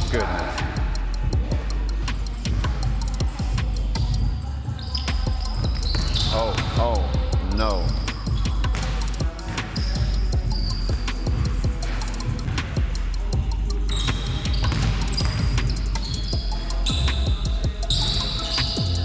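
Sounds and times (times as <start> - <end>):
background music with bass: 0.0 - 19.0
basketball bouncing on hardwood: 14.1 - 15.6.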